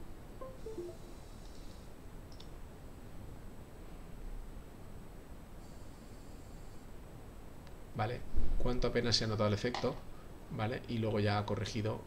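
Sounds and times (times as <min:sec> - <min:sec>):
low room noise: 0:00.0 - 0:12.0.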